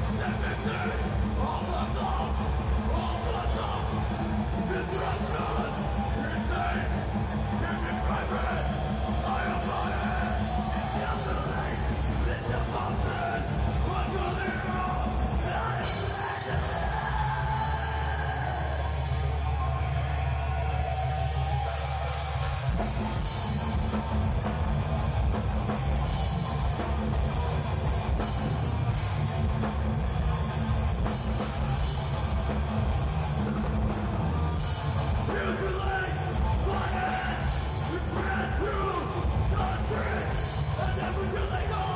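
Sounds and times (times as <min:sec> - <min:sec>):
fast drumming: 0:00.0 - 0:19.6, 0:21.2 - 0:41.9
distorted guitars and bass: 0:00.0 - 0:41.9.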